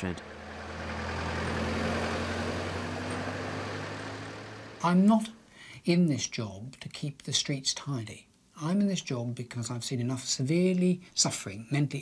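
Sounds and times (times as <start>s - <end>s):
vehicles driving past: 0.0s - 5.0s.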